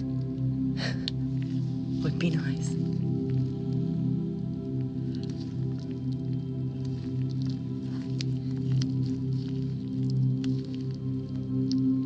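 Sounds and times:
background music with low tones: 0.0s - 12.0s.

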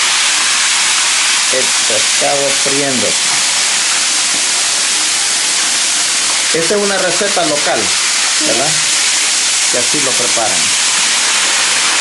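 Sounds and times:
fish sizzling in hot oil: 0.0s - 12.0s.

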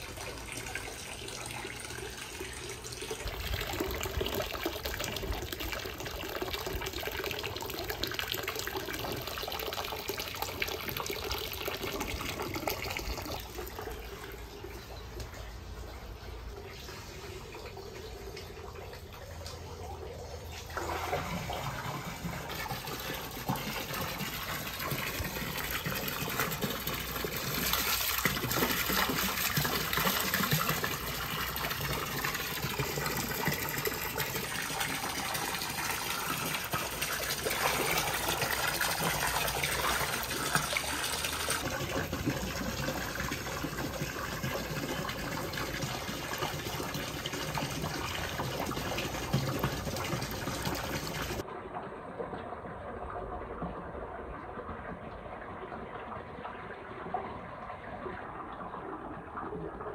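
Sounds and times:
water splashing into a pool: 0.0s - 59.9s.

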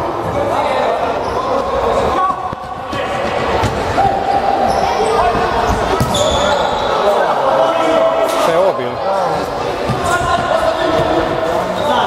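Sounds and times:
players shouting in echoing hall: 0.0s - 12.0s.

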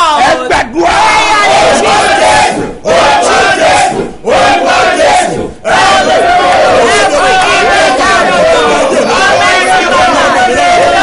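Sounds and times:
people shouting prayer: 0.0s - 11.0s.

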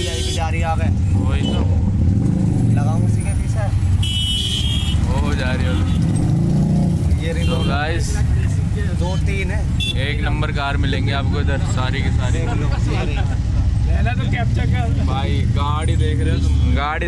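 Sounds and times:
horn honking: 0.0s - 0.7s, 3.9s - 6.4s, 7.2s - 8.0s, 9.2s - 10.3s
auto-rickshaw engine rumbling: 0.0s - 17.0s
voices: 0.0s - 17.0s.

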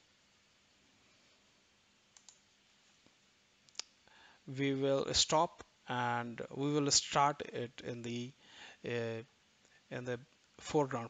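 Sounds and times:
computer mouse clicks: 2.1s - 2.5s.

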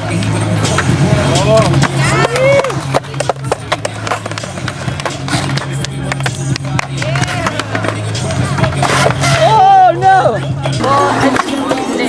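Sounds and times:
skateboard wheels rolling on concrete: 0.0s - 12.0s
skateboard clacking on metal coping: 1.7s - 8.0s.

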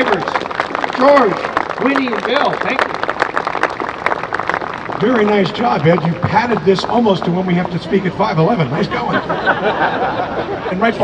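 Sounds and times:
crowd clapping: 0.0s - 8.8s.

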